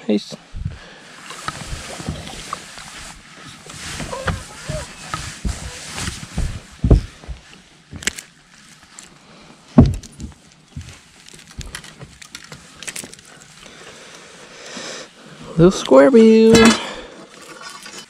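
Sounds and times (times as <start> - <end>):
heavy bumps on boat: 4.0 - 7.4, 9.8 - 10.1.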